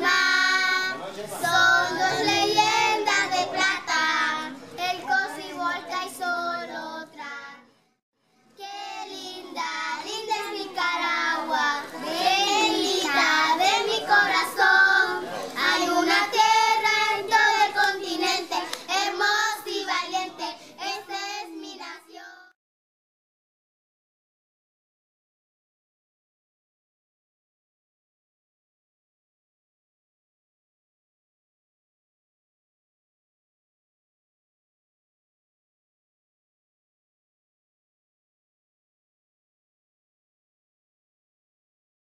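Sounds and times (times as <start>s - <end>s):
children singing together: 0.0s - 7.6s, 8.6s - 22.5s.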